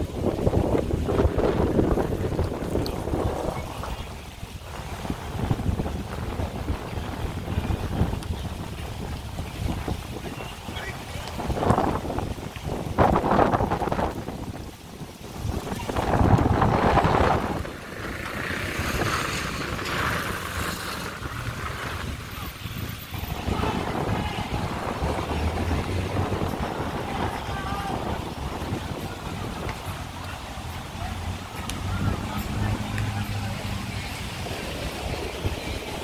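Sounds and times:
low outdoor rumble: 0.0 - 36.0
wind buffeting microphone: 0.0 - 36.0.

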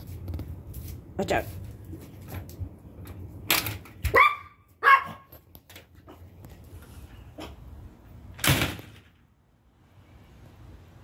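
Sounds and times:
small dog barking: 4.1 - 5.3.

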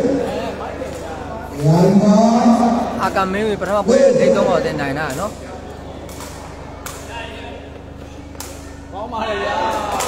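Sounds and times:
crowd murmuring in a hall: 0.0 - 10.0.

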